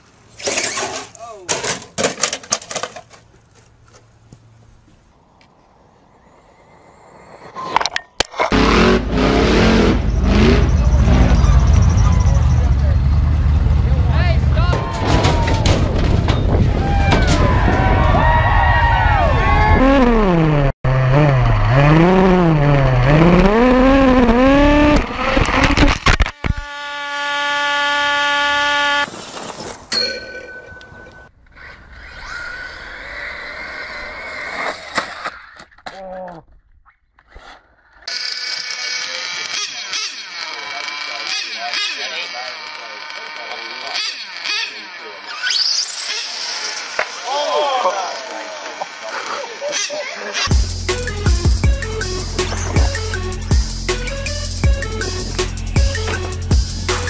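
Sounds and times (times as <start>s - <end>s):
model car motors revving: 19.8s - 29.1s, 38.0s - 51.2s.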